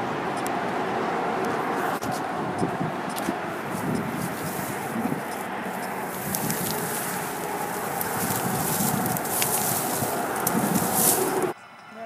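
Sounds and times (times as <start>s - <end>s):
sharp crackles: 3.2s - 11.5s
clothing rustling on microphone: 3.6s - 11.5s.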